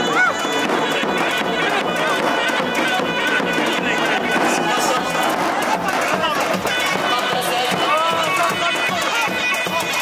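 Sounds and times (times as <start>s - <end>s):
crowd voices: 0.0s - 10.0s
large drum beat: 0.0s - 10.0s
reedy wind instrument: 0.0s - 10.0s.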